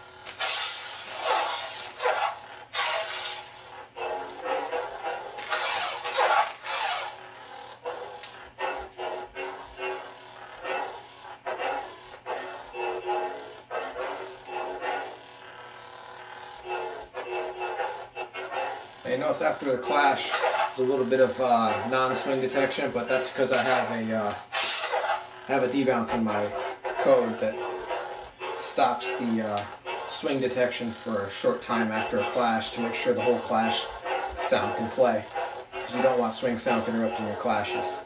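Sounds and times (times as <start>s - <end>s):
lightsaber electric hum: 0.0s - 38.0s
crackling lightsaber clash effects: 0.2s - 15.2s, 16.6s - 38.0s
lightsaber swing sounds: 0.3s - 7.2s, 7.8s - 15.2s, 16.6s - 38.0s.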